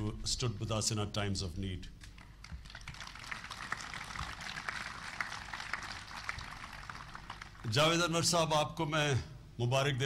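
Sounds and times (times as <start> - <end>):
audience applauding: 2.2 - 7.7.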